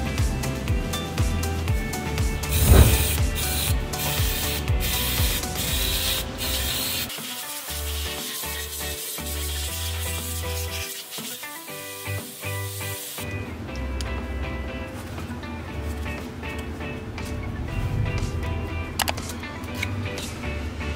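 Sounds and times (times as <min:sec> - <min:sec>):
background music with bass line: 0:00.0 - 0:07.0, 0:12.1 - 0:20.9
cleaning spray hissing: 0:02.4 - 0:13.3.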